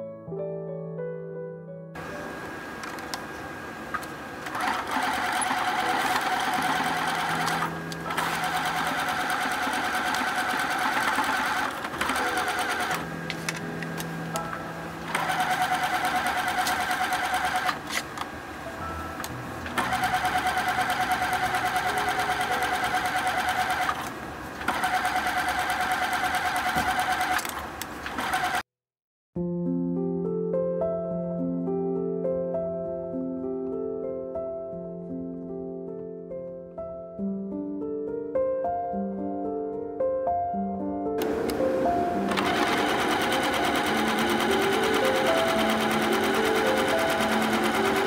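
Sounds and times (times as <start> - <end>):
sewing machine stitching: 4.4 - 13.0, 15.1 - 18.0, 19.7 - 28.6, 42.3 - 48.0.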